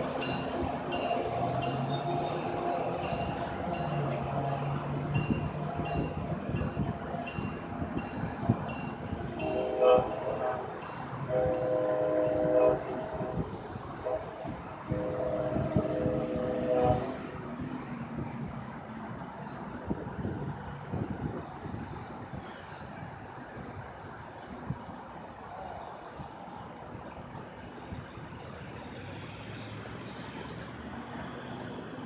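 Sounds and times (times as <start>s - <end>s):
train rumble: 0.0s - 32.0s
thin high squeal: 0.2s - 9.7s, 10.4s - 23.0s
train horn chord: 9.3s - 17.4s.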